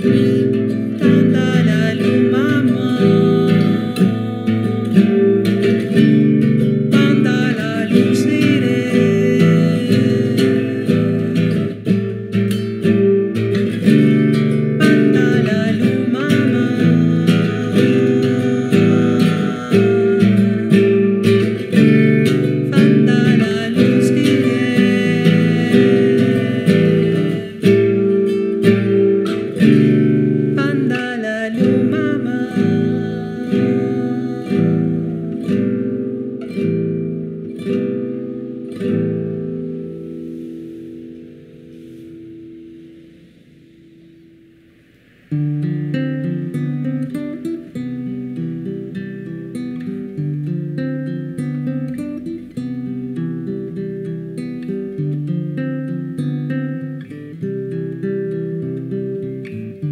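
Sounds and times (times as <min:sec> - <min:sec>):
person singing: 0:00.0 - 0:36.9
acoustic guitar strumming: 0:00.0 - 0:59.9.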